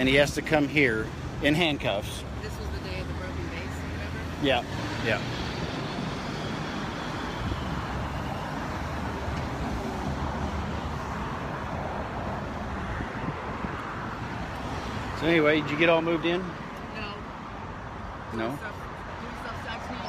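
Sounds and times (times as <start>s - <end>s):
road traffic rumble: 0.0s - 20.0s.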